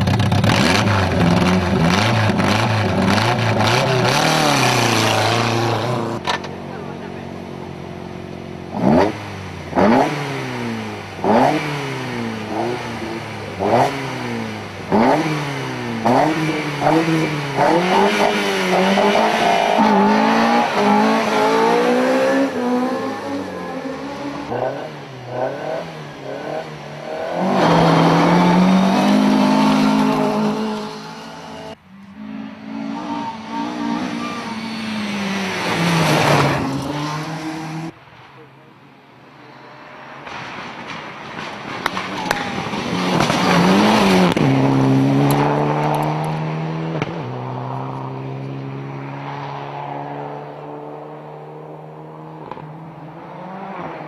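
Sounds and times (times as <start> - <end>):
rally car engine revving: 0.0 - 38.0, 39.5 - 54.0
car passing loudly: 1.9 - 54.0.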